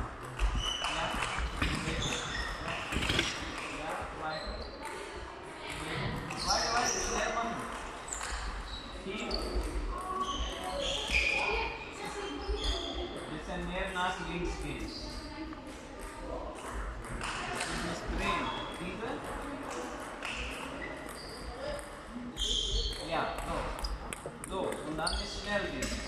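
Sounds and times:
table-tennis balls clicking: 0:00.2 - 0:03.8, 0:07.2 - 0:08.7, 0:09.4 - 0:11.2, 0:16.0 - 0:22.1, 0:22.8 - 0:26.0.

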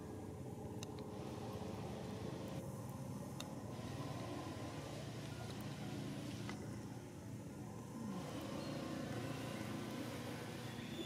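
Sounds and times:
low outdoor background rumble: 0:00.0 - 0:11.0.

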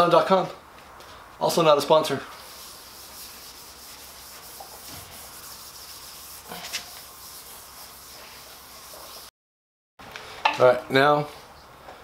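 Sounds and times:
pad rubbing wax on metal: 0:02.3 - 0:09.3.

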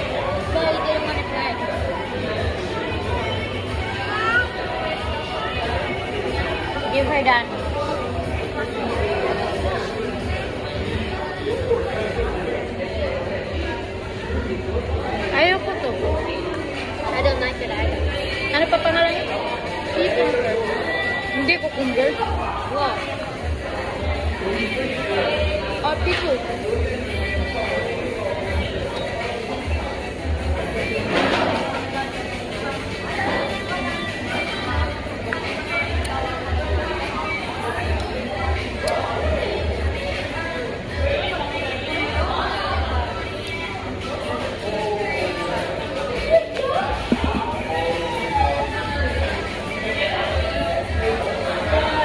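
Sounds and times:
chatter of many voices: 0:00.0 - 0:52.0.

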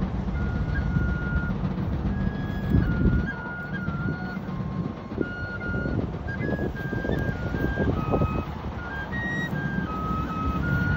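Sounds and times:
low steady rumble: 0:00.0 - 0:10.9
slow tune on high wind instrument: 0:00.0 - 0:10.9.

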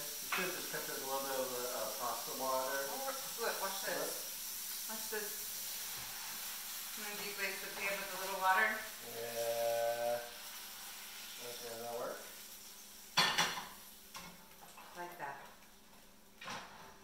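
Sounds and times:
food sizzling in a frying pan: 0:00.0 - 0:17.0
metal pan and utensil clatter: 0:13.2 - 0:15.0.

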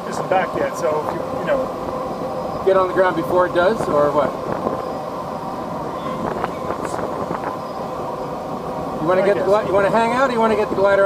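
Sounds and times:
airflow rushing over canopy: 0:00.0 - 0:11.0.

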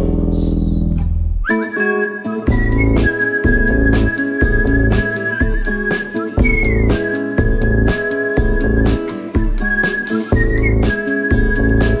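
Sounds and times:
whistled melody: 0:01.4 - 0:12.0
band backing with steady beat: 0:02.5 - 0:12.0.

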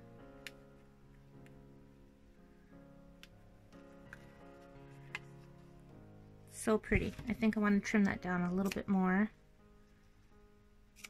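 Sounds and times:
faint background music: 0:00.0 - 0:11.0.

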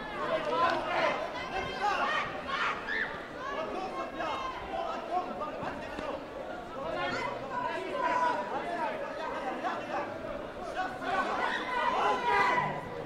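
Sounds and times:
crowd chattering and calling out: 0:00.0 - 0:13.0.

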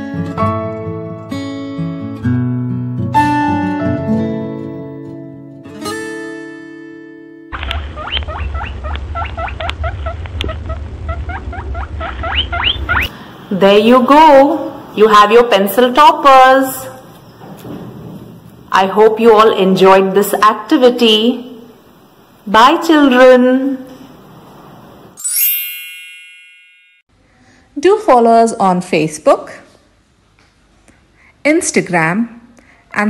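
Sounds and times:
bright chime: 0:25.2 - 0:27.1.

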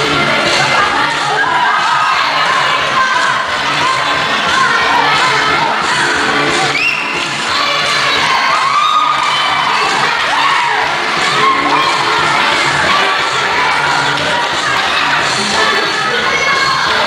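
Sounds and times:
dance music with steady beat: 0:00.0 - 0:17.0
women shouting and cheering: 0:00.0 - 0:17.0.

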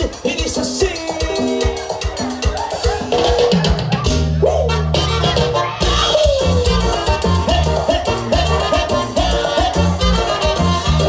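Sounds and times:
deep bass line: 0:00.0 - 0:11.0
drum kit beat: 0:00.0 - 0:11.0
held melodic notes: 0:00.2 - 0:11.0.

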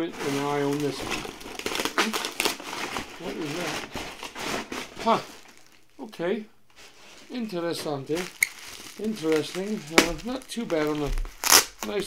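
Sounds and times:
bubble wrap crinkling: 0:00.0 - 0:12.0.

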